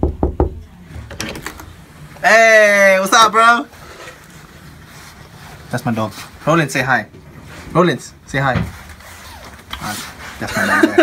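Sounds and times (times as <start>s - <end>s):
knuckles knocking on door: 0.0s - 0.6s.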